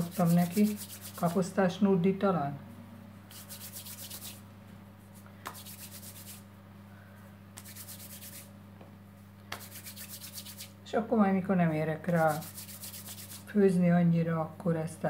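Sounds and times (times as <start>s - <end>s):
fingers rubbing dough on wood: 0.0s - 1.5s, 3.3s - 4.4s, 5.5s - 6.4s, 7.6s - 8.5s, 9.5s - 10.8s, 12.1s - 13.5s
steady low hum: 0.0s - 15.0s.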